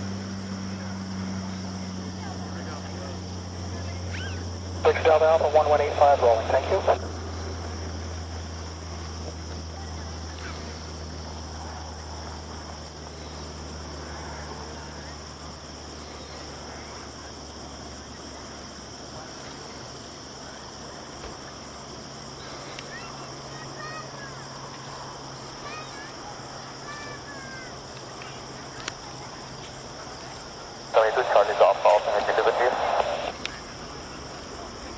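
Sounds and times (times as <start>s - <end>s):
crickets trilling: 0.0s - 34.9s.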